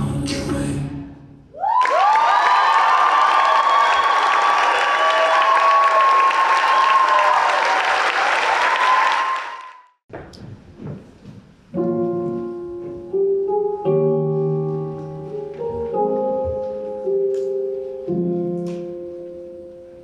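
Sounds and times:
high whoops: 1.5 - 9.9
audience applauding: 1.6 - 9.9.

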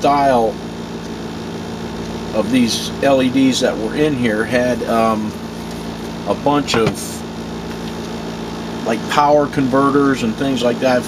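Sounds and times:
cooling fans humming: 0.0 - 11.0.

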